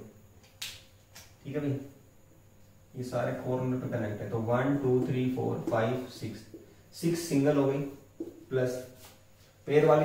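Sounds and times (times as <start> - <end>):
marker tapping whiteboard: 4.7 - 6.7, 8.2 - 8.5.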